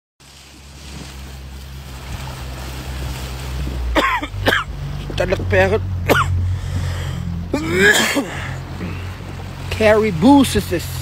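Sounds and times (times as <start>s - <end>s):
water washing against canoe: 0.2s - 11.0s
wind buffeting microphone: 0.3s - 11.0s.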